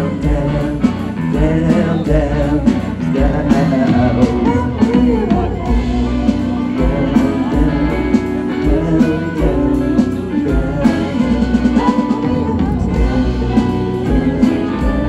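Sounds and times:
drum kit beat: 0.0s - 15.0s
electric guitars: 0.0s - 15.0s.

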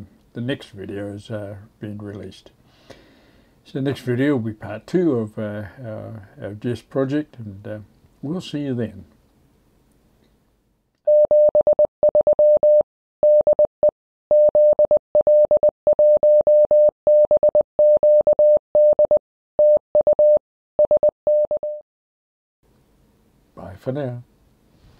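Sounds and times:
morse code beeps: 11.1s - 13.7s, 14.3s - 21.8s.

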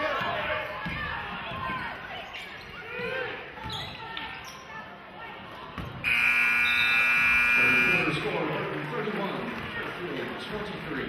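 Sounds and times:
crowd chatter: 0.0s - 11.0s
scoreboard horn blast: 6.0s - 8.3s.

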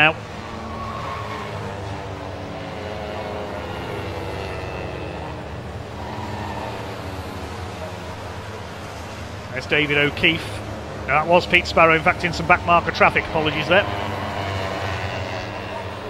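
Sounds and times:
race car engines droning: 0.0s - 16.0s.

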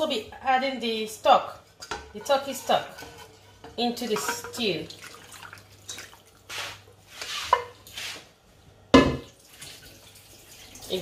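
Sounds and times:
liquid pouring and splashing: 4.9s - 6.6s, 9.3s - 11.0s.

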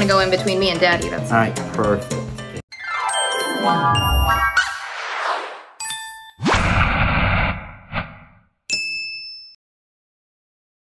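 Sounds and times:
rising whoosh: 6.4s - 8.4s
bell-like ding: 8.7s - 9.6s.

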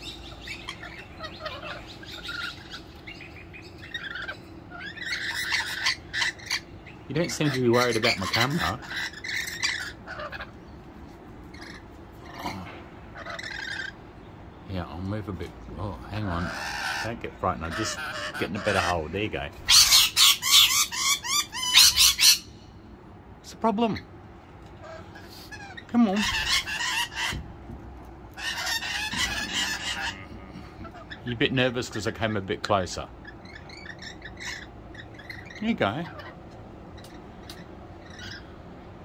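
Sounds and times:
lorikeets calling: 0.0s - 27.6s, 28.2s - 39.0s.

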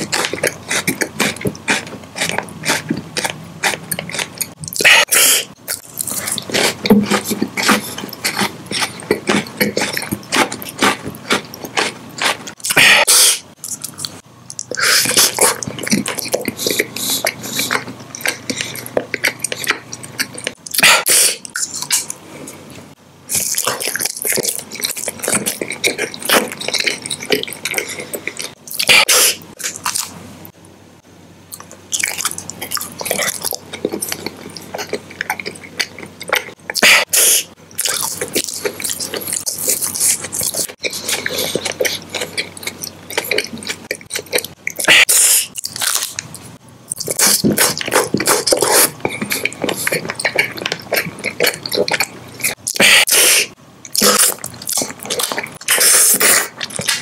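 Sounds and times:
wet mouth chewing clicks: 0.0s - 22.2s, 31.5s - 57.0s.

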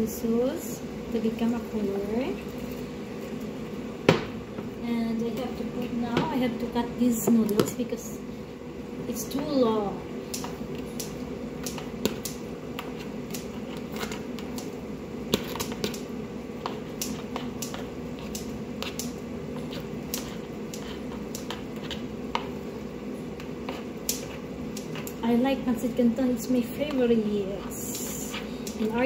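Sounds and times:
steady low hum: 0.0s - 29.0s
scissors snipping noodles: 16.9s - 22.0s.

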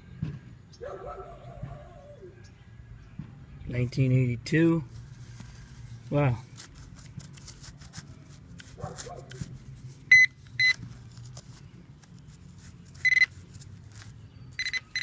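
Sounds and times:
scratching of soil and grass: 4.0s - 15.0s
metal detector short high beeps: 10.1s - 10.8s, 13.0s - 13.3s, 14.6s - 15.0s.

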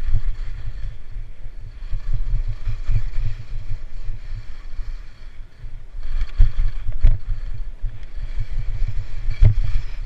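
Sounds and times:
skis hissing over snow: 0.0s - 10.0s
wind buffeting microphone: 0.0s - 10.0s.

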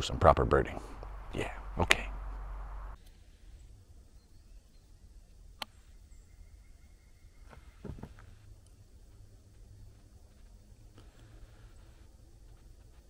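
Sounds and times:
low rumbling noise: 0.0s - 3.0s
woodland ambience: 0.0s - 13.0s.

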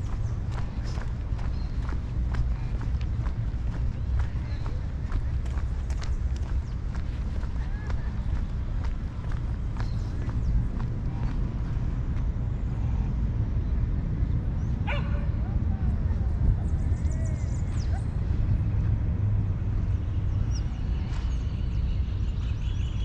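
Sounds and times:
footsteps clicking: 0.0s - 12.3s
low rumble on microphone: 0.0s - 23.0s.

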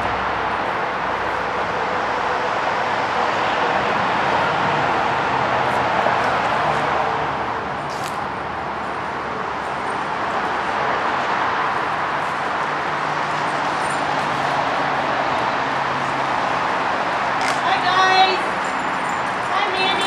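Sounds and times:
outdoor background rush: 0.0s - 20.0s.

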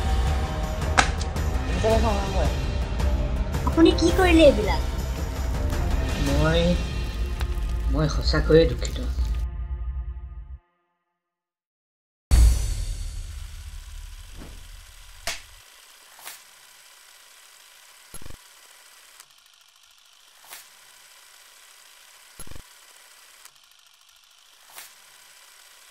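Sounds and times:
deep hit: 12.3s - 15.2s.

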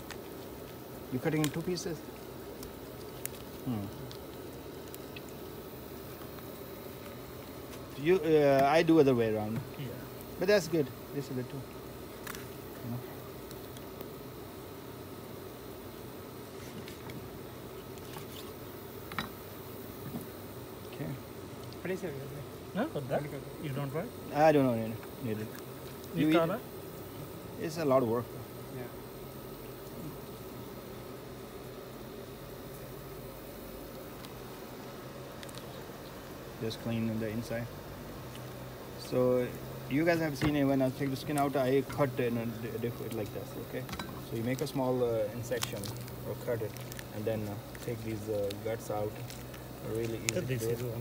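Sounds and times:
faint background hiss: 0.0s - 51.0s.

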